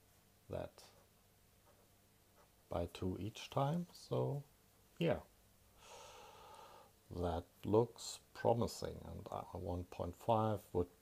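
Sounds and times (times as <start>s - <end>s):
faint breath out: 5.8s - 7.0s.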